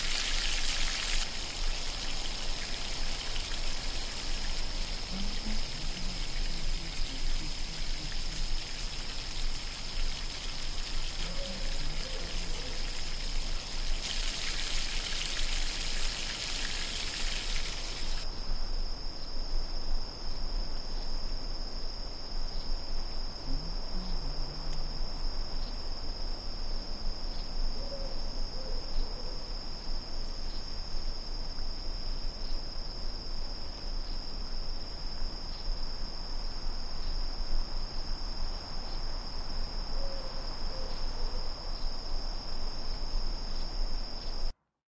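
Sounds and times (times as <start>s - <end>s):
broad hiss: 0.0s - 18.3s
insects chirping: 0.0s - 44.5s.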